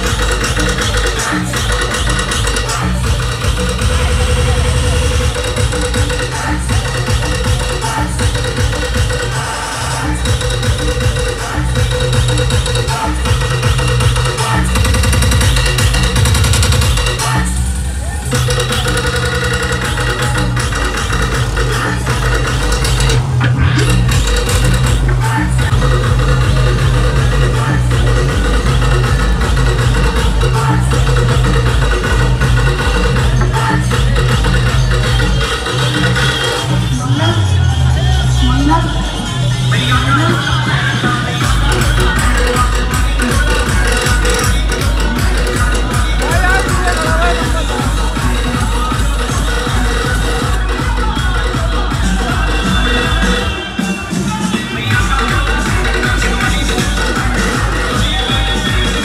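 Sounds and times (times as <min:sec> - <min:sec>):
electronic dance music with heavy bass: 0:00.0 - 0:59.0.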